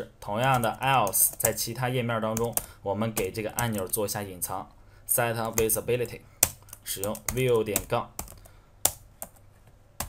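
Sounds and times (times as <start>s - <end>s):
keystrokes on computer keyboard: 0.4s - 1.6s, 2.4s - 4.0s, 6.4s - 9.4s.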